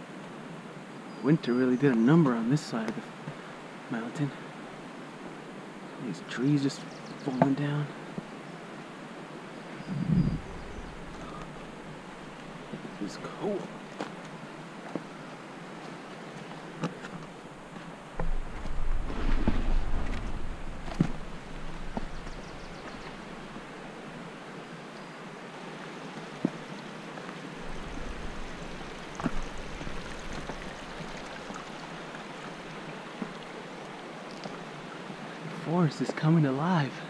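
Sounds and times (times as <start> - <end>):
mountain stream rushing: 0.0 - 37.0
wind rumble on microphone: 9.8 - 12.2, 18.1 - 23.7, 27.6 - 31.6
footsteps on trail: 10.3 - 24.2, 26.1 - 34.6.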